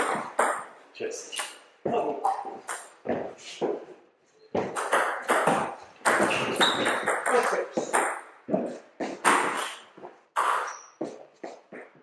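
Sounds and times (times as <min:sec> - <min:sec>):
ball bouncing on table: 0:04.6 - 0:09.6.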